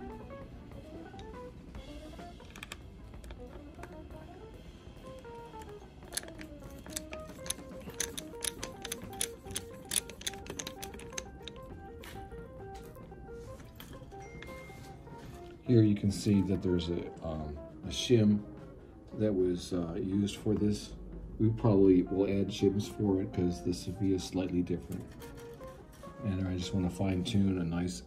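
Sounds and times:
background music slow melody: 0.0 - 28.0
screwdriver clicking on screws: 2.4 - 4.0, 5.6 - 11.7.

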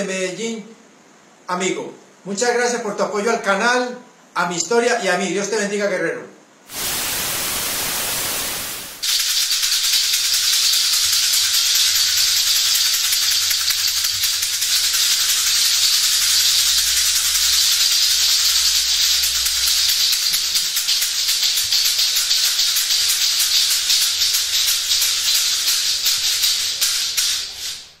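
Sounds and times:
tv static hiss: 6.6 - 28.0
rapid shaking rattle: 6.7 - 28.0.

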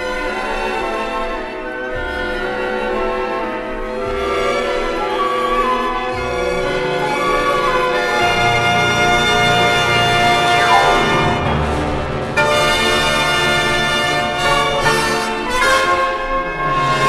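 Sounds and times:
orchestra playing film music: 0.0 - 17.0.

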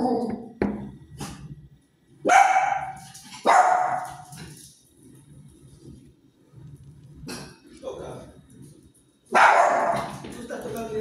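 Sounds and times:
dog barking: 2.2 - 4.2, 9.3 - 10.2.

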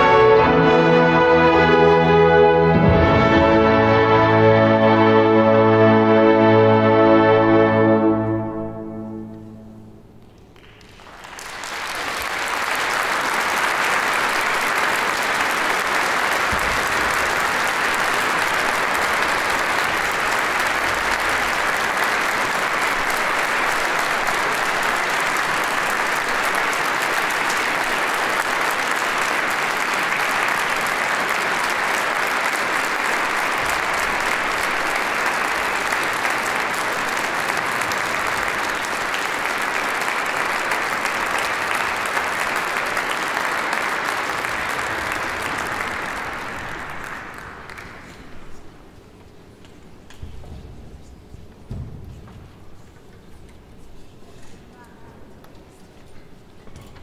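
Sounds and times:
audience applauding: 10.2 - 49.0.

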